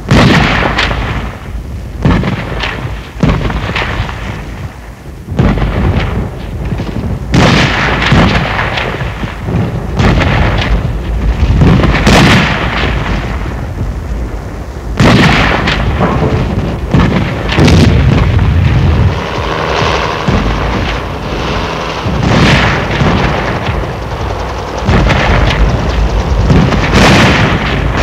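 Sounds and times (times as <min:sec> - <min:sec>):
continuous deep rumble: 0:00.0 - 0:28.0
gunfire and explosions: 0:00.0 - 0:28.0.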